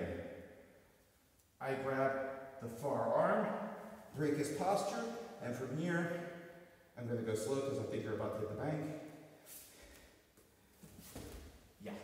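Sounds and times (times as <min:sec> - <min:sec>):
soft breath: 0:09.4 - 0:11.2.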